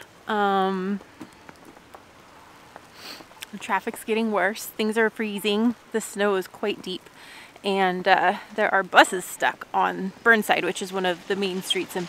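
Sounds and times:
snow pattering on jacket: 0.0s - 12.0s.

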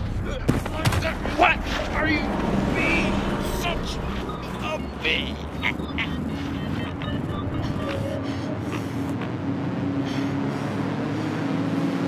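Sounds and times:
road traffic rumble: 0.0s - 12.0s
strained cries and grunts: 1.1s - 10.6s.

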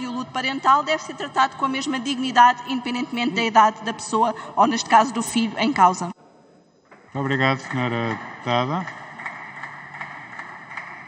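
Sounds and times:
large hall room noise: 0.0s - 11.0s.

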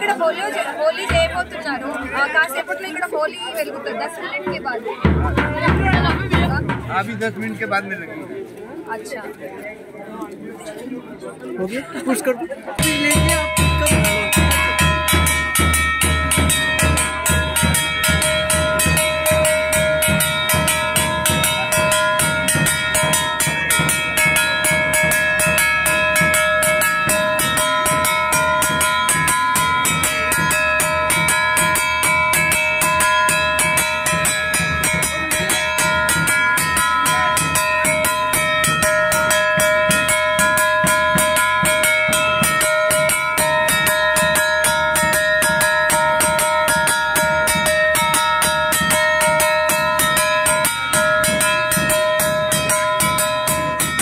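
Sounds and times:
temple bell ringing: 0.0s - 3.3s, 5.0s - 8.2s, 12.8s - 54.0s
drum beats: 0.0s - 9.4s, 12.7s - 54.0s.

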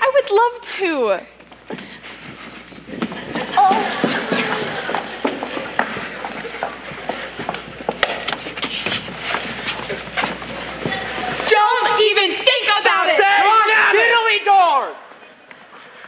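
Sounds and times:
footsteps on stage floor: 1.3s - 11.5s
audience cheering and laughing: 2.9s - 7.4s.

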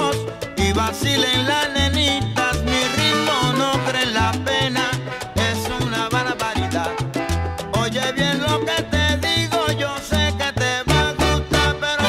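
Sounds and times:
salsa music with horns and vocals: 0.0s - 12.0s.

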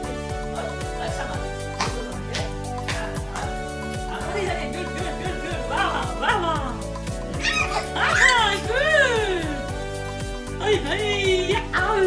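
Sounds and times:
music with a steady beat: 0.0s - 12.0s
babies squealing: 7.3s - 8.7s.

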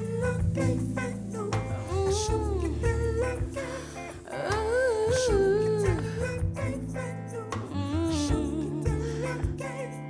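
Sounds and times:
band accompaniment with bass: 0.0s - 10.0s
woman humming long notes: 7.6s - 9.6s.

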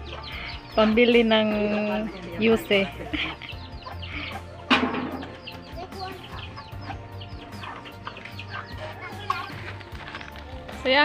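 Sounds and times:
chickens clucking: 0.0s - 11.0s.

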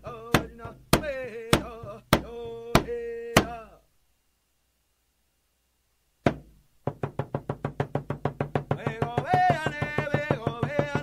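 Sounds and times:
person singing: 0.0s - 3.9s, 8.7s - 11.0s
hand drum beats: 6.3s - 11.0s.

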